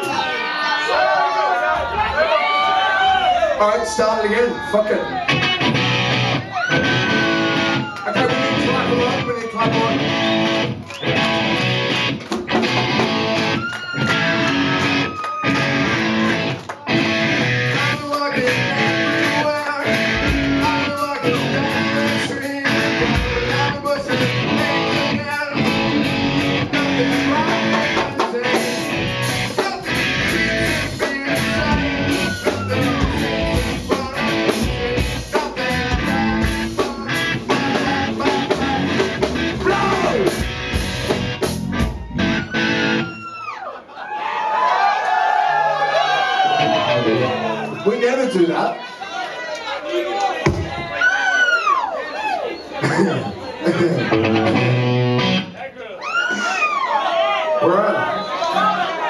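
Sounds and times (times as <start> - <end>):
electric guitar playing choppy rhythm: 5.2 - 43.1, 53.7 - 55.6
deep bass: 14.1 - 43.0.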